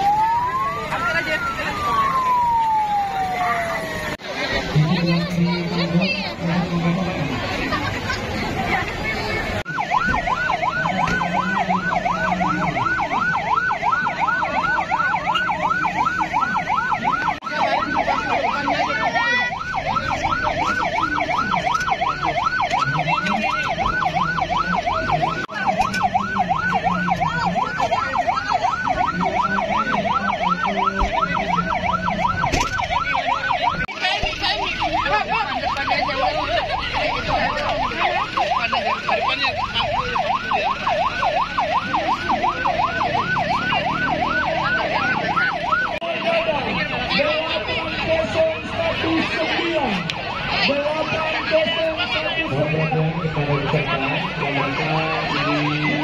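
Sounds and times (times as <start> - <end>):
ambulance siren yelping: 0.0 - 56.0.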